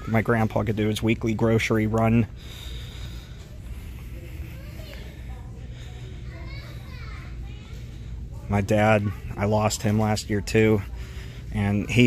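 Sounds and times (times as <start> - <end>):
distant children chattering: 0.0 - 12.0
steady low hum: 0.0 - 12.0.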